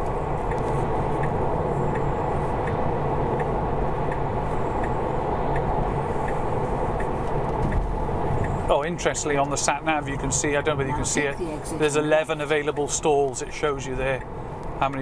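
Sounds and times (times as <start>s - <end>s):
turn signal ticking: 0.0s - 15.0s
tyre and road noise in car: 0.0s - 15.0s.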